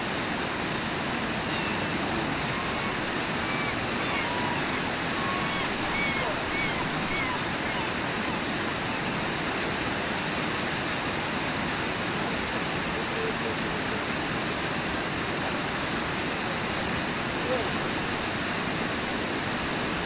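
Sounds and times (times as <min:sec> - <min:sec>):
waterfall and rapids rushing: 0:00.0 - 0:20.0.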